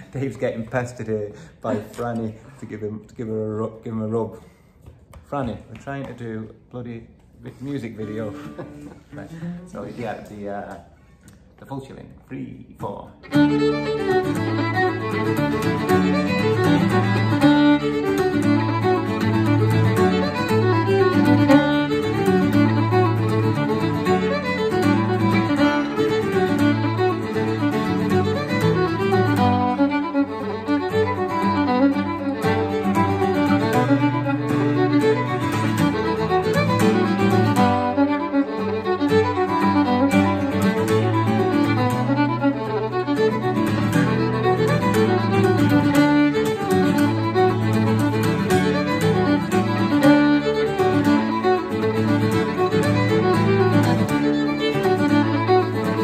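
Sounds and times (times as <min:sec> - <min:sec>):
fiddle playing a reel: 0:07.5 - 0:10.8, 0:13.2 - 0:56.0
acoustic guitar strumming: 0:13.2 - 0:56.0.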